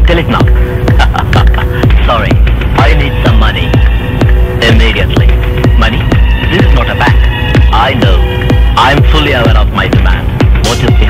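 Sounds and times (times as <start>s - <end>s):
heavy kick drum beat: 0.0s - 11.0s.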